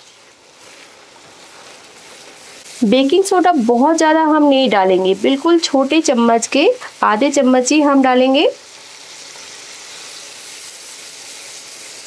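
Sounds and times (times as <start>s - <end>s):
paste sizzling in hot oil: 0.0s - 12.0s.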